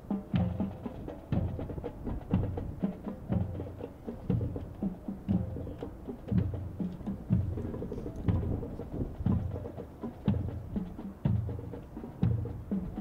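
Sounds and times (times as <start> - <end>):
bass drum beat: 0.1 - 13.0.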